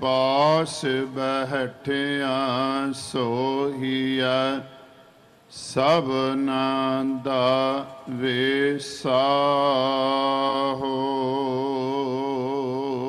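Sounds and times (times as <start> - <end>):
man singing a hymn: 0.0 - 4.7, 5.6 - 13.0.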